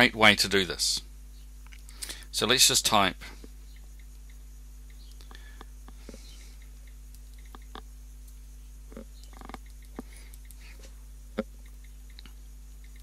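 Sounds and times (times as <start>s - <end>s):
low hum: 2.8s - 13.0s.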